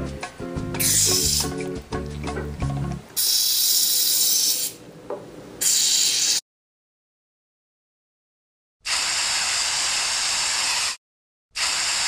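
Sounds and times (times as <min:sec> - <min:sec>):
music: 0:00.0 - 0:03.0
aerosol spray hissing: 0:00.8 - 0:01.6, 0:03.2 - 0:04.8, 0:05.6 - 0:06.4, 0:08.9 - 0:11.0.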